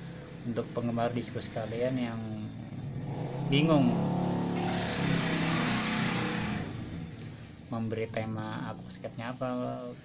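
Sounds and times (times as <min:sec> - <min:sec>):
vehicle engine passing by: 0:00.0 - 0:07.9.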